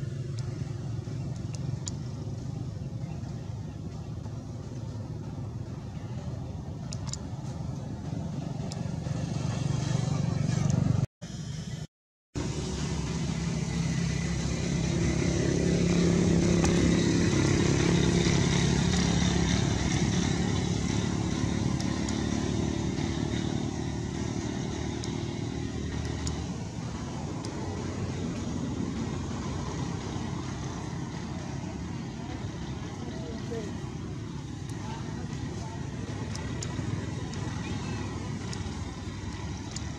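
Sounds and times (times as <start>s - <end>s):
vehicle engine running: 0.0s - 39.9s.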